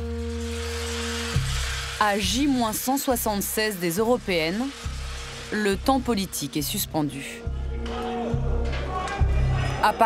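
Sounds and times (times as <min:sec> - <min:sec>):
steady hiss: 0:00.0 - 0:06.8.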